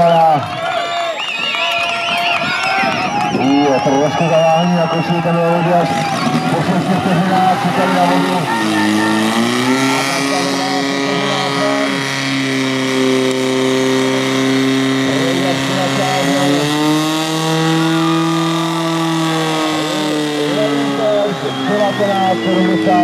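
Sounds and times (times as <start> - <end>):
voices shouting: 0.0 - 12.4, 17.6 - 23.0
pump engine running hard: 2.2 - 23.0.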